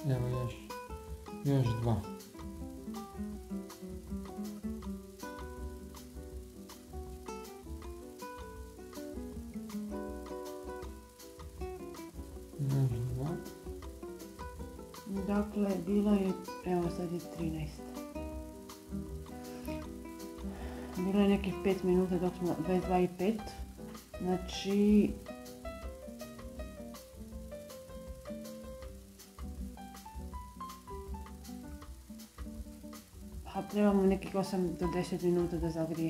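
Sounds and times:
background music with beat: 0.0s - 36.0s.

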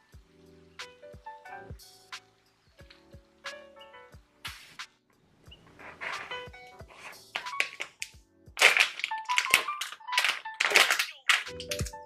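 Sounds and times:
soft background music: 0.0s - 12.0s
plastic food pack crinkling: 5.8s - 11.9s.

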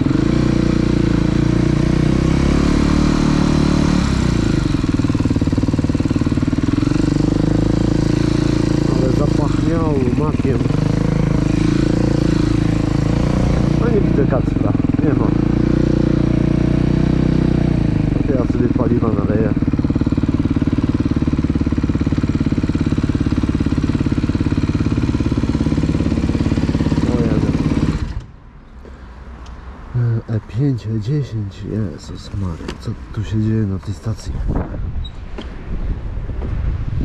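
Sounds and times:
dirt bike engine running: 0.0s - 28.3s.

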